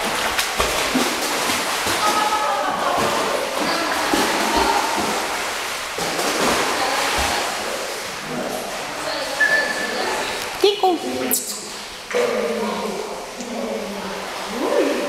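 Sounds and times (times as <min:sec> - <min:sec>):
dogs splashing in pool water: 0:00.0 - 0:10.6.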